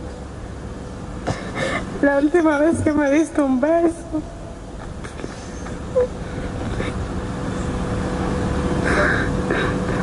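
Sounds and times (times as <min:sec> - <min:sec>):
faint sound system hum: 0:00.0 - 0:10.0
woman crying: 0:03.6 - 0:04.5, 0:08.8 - 0:10.0.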